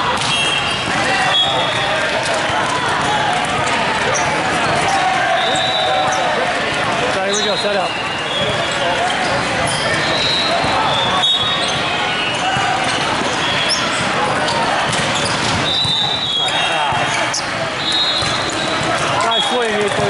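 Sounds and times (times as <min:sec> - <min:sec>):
voices and shouts: 0:00.0 - 0:20.0
volleyballs struck and bouncing: 0:00.0 - 0:20.0
short high-pitched squeaks: 0:07.3 - 0:19.5.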